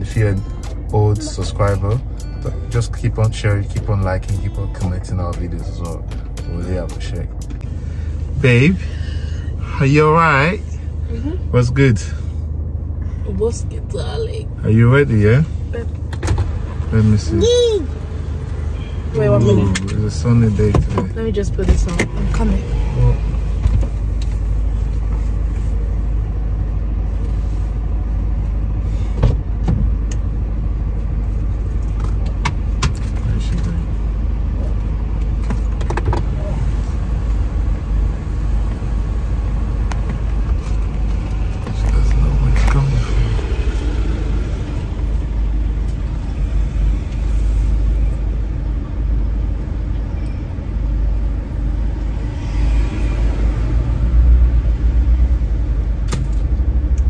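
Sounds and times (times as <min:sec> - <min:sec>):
low rumble in car cabin: 0:00.0 - 0:57.0.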